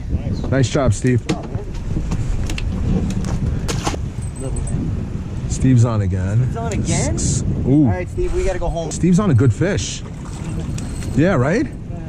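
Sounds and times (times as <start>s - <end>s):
steady low rumble: 7.0s - 12.0s.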